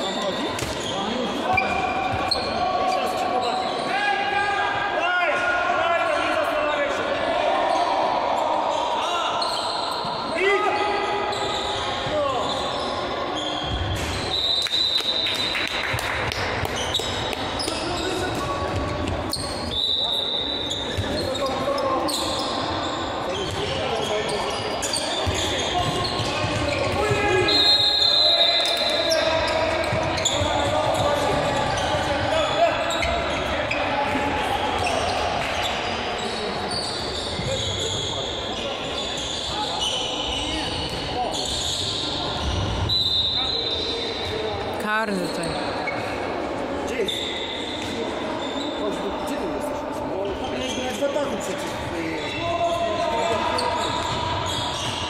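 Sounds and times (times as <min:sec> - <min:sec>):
ball bouncing on court: 0:00.6 - 0:00.9, 0:15.9 - 0:19.4, 0:25.2 - 0:27.4
referee's whistle blasts: 0:11.3 - 0:15.5, 0:19.3 - 0:21.4, 0:24.8 - 0:31.0, 0:36.8 - 0:44.3.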